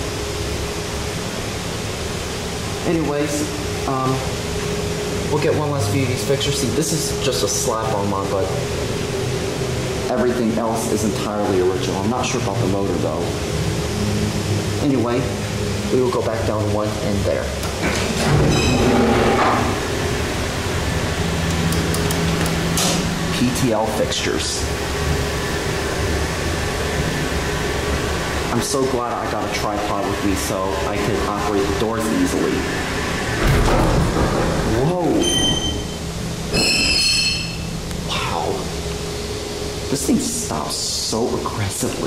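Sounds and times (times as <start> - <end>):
elevator mechanical rumble: 0.0 - 42.0
steady low hum: 0.0 - 42.0
high metallic squeal: 18.4 - 19.7, 35.1 - 37.8
brief high squeal: 35.2 - 36.0, 36.6 - 37.7.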